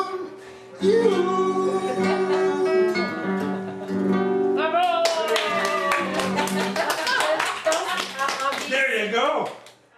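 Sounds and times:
person singing: 0.0s - 3.3s
fast hand clapping: 4.8s - 9.8s.

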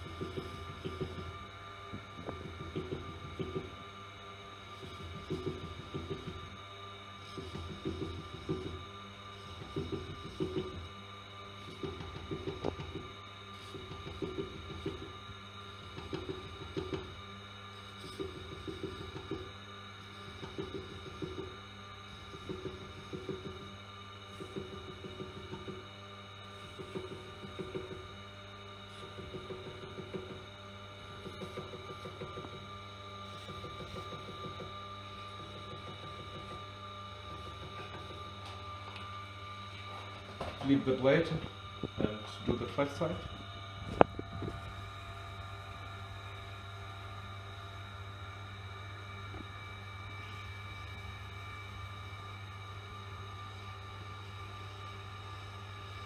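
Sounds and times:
sharpener motor humming: 28.8s - 45.0s.

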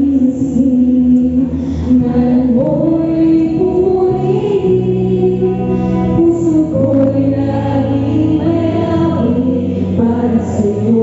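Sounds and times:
long held low chords: 0.0s - 11.0s
person singing into a microphone: 0.0s - 11.0s.

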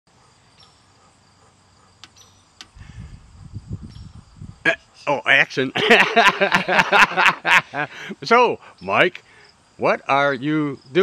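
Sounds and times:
insects chirping: 0.1s - 11.0s
sharp clicks: 2.0s - 2.8s
low rumbling thumps: 2.6s - 4.7s.

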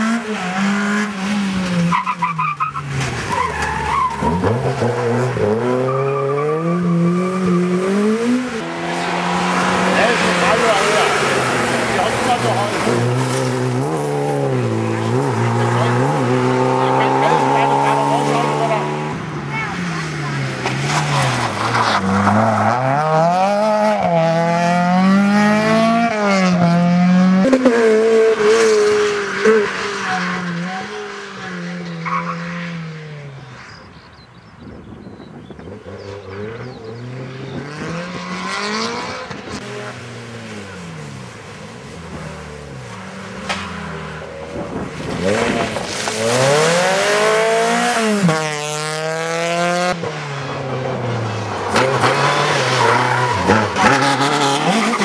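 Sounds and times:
rally car engines revving: 0.0s - 55.0s.

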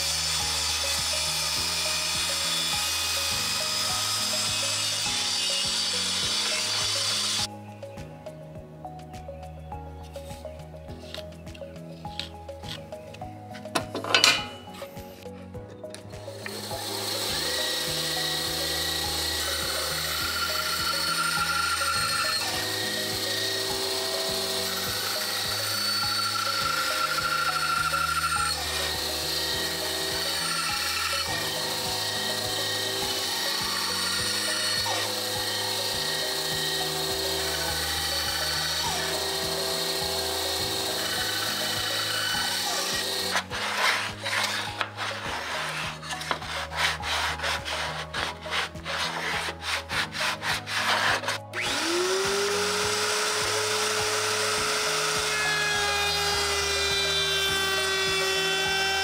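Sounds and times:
band saw cutting wood: 0.0s - 7.5s, 16.3s - 59.0s
background music: 0.0s - 59.0s
scratchy scraping strokes: 42.2s - 51.6s.

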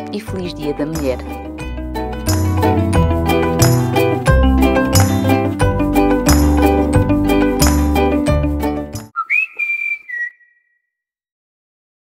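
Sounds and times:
person whistling: 9.1s - 10.8s.

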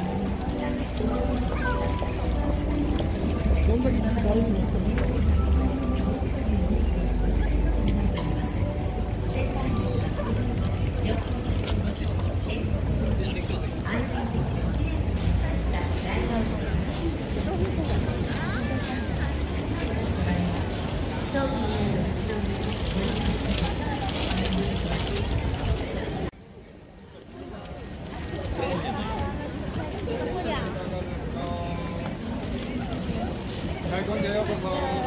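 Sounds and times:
murmur of voices: 0.0s - 35.0s
passers-by talking: 0.0s - 35.0s
traffic rumble: 0.0s - 35.0s.

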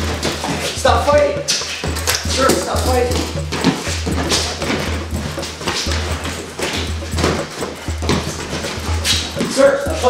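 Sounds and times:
music with pulsing bass beat: 0.0s - 10.0s
scuffling footsteps: 0.0s - 10.0s.

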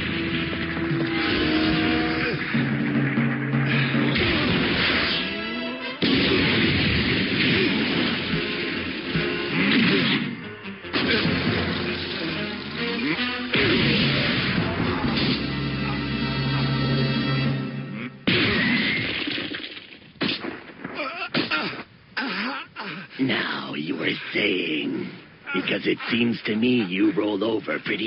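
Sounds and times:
faint soundtrack music: 0.0s - 18.4s.

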